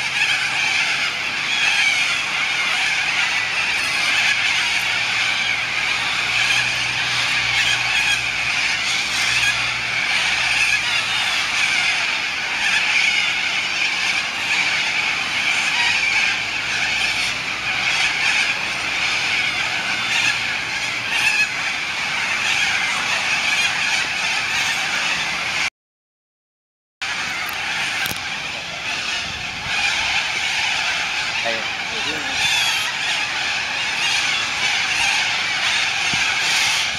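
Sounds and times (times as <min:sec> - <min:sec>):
cockatoos screeching: 0:00.0 - 0:25.7, 0:27.0 - 0:36.9.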